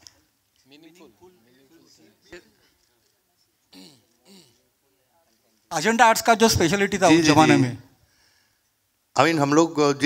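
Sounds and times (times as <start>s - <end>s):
faint vocal sounds from person: 2.2s - 5.5s.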